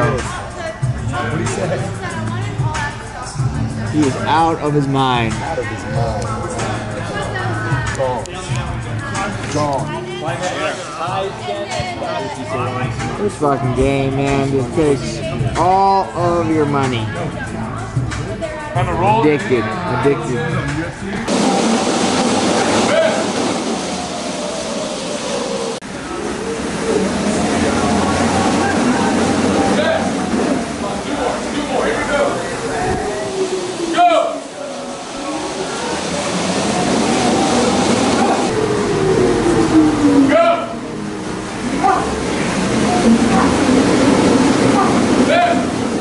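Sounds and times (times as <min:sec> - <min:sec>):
treadmills rumbling: 0:00.0 - 0:46.0
voices: 0:00.0 - 0:46.0
treadmill belt rumbling: 0:35.4 - 0:46.0.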